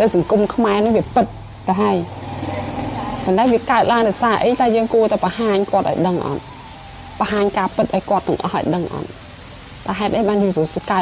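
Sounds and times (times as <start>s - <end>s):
steady high-pitched hiss: 0.0s - 11.0s.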